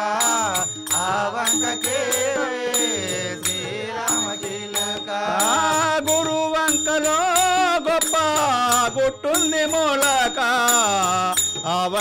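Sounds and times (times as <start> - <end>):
harmonium: 0.0 - 12.0
men singing: 0.0 - 12.0
small hand cymbals: 0.0 - 12.0
tabla: 0.0 - 12.0.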